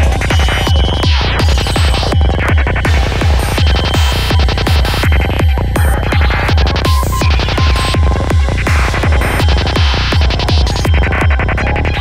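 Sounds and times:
choppy high synth sounds: 0.0s - 12.0s
kick drum: 0.0s - 12.0s
rolling bassline: 0.0s - 12.0s.

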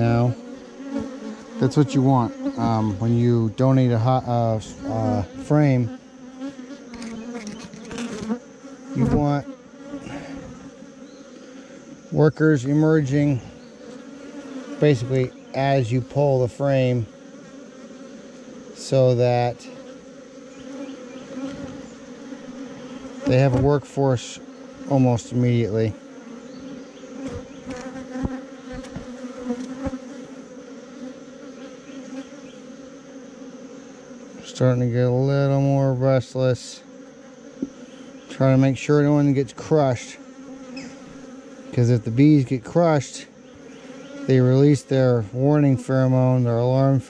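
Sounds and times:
honeybees humming: 0.0s - 47.0s.

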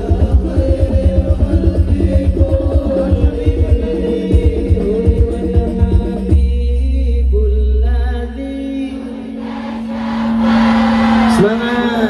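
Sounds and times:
group voices singing: 8.8s - 11.7s.

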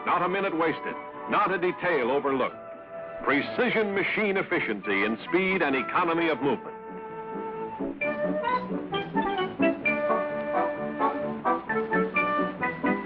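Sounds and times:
orchestral brass music: 0.0s - 13.0s.

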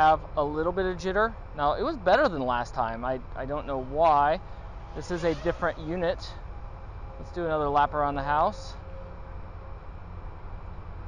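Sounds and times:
low rumble: 2.9s - 10.6s
even hiss: 3.6s - 6.5s.

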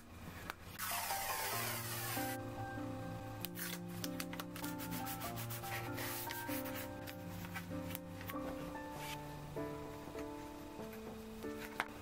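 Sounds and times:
fingers rubbing paper tape: 0.8s - 2.4s, 3.5s - 7.2s
soft piano music: 0.8s - 12.0s.

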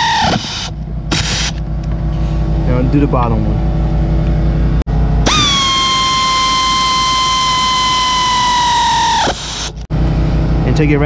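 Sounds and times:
air ratchet whining: 0.0s - 1.6s, 5.2s - 9.9s.

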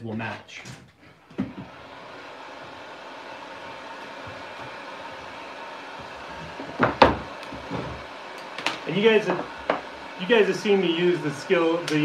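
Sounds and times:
heat gun blowing: 1.2s - 12.0s
wood knocking on table: 6.6s - 8.0s.

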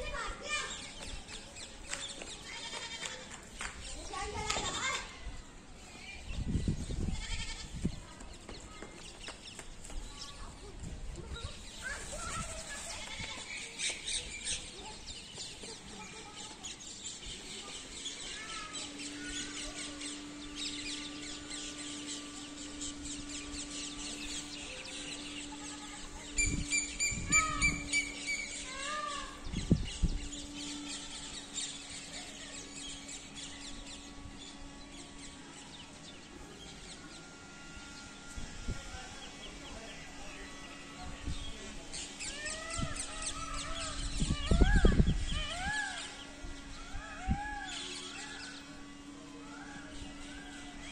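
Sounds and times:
small birds chirping: 0.0s - 50.9s
steady low hum: 0.0s - 50.9s
loud calls: 41.8s - 50.9s.

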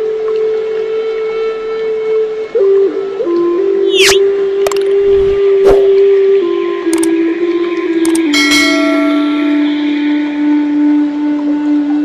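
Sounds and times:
held meditation tone: 1.0s - 12.0s
bell-like notes ringing: 8.3s - 10.4s.

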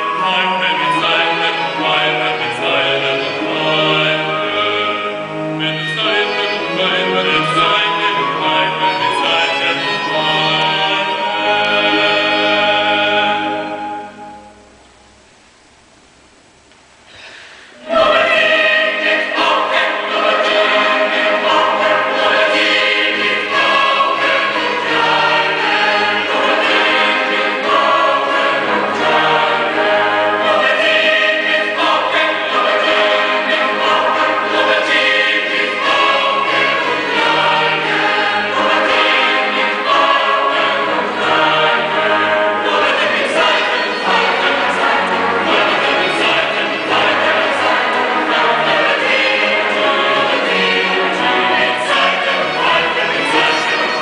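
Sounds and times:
choir singing with strings: 0.0s - 15.0s, 17.3s - 54.0s.

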